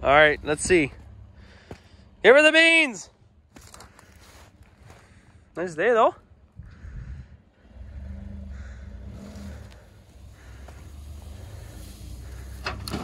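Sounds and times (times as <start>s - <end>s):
truck engine rumbling under load: 0.0s - 13.0s.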